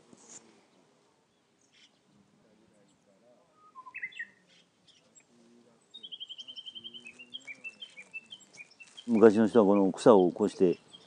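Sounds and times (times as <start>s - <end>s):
small birds chirping: 0.2s - 11.0s.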